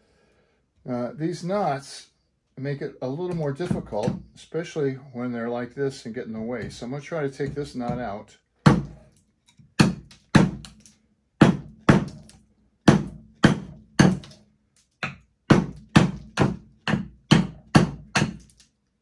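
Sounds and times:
hand axe chopping wood: 3.3 - 4.3, 6.4 - 9.1, 9.7 - 14.4, 15.0 - 18.6.

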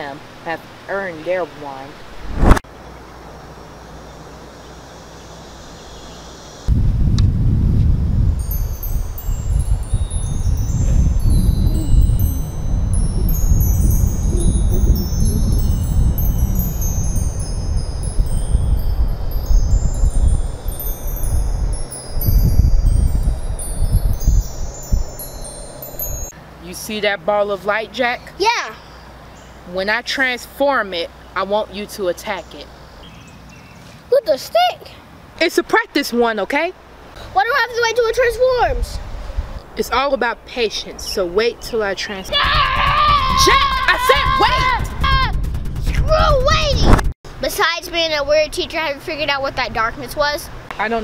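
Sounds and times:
wind rumble on microphone: 2.1 - 2.6, 6.7 - 26.3, 38.0 - 39.8, 42.3 - 51.0
twinkling magic chime notes: 8.4 - 26.3.

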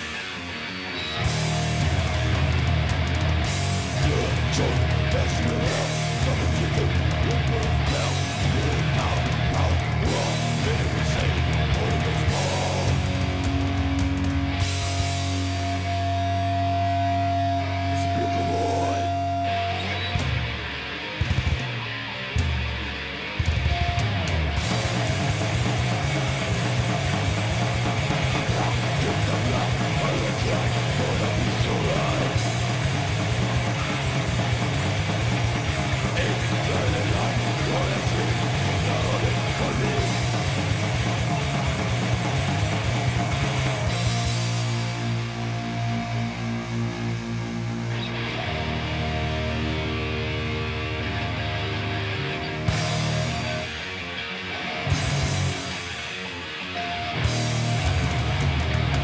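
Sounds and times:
bass guitar: 0.0 - 59.0
distorted electric guitars: 0.0 - 59.0
heavy metal band playing live: 0.0 - 59.0
fast dense drumming: 1.2 - 15.7, 24.6 - 45.1.

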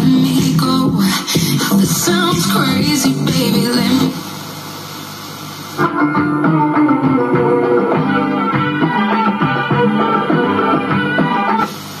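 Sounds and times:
radio music: 0.0 - 12.0
radio static hiss: 1.6 - 7.0, 7.6 - 12.0.

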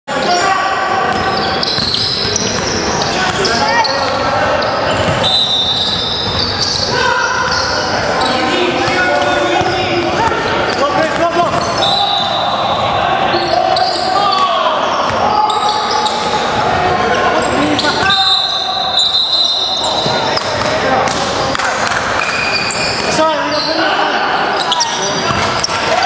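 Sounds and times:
players' voices echoing: 0.1 - 26.0
basketball bouncing: 1.0 - 4.3, 8.8 - 11.9, 25.3 - 25.7
shoe squeaks on gym floor: 1.1 - 9.9, 10.6 - 12.7, 17.4 - 20.8, 22.2 - 26.0.

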